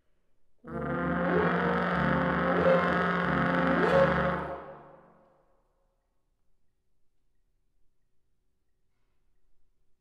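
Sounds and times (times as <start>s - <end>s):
brass ensemble sustained chord: 0.7s - 5.0s.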